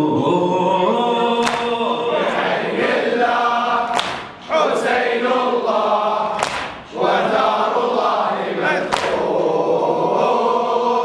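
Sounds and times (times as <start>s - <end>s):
men chanting in unison: 0.0s - 11.0s
sharp slaps: 1.4s - 1.8s, 3.9s - 4.5s, 6.3s - 6.9s, 8.9s - 9.2s.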